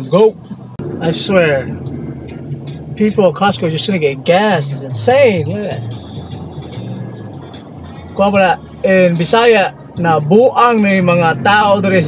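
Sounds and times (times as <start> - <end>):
car engine hum inside cabin: 0.0 - 12.0.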